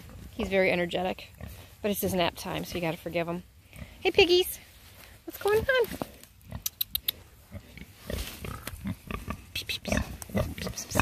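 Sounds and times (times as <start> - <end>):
pig grunting: 7.5 - 11.0.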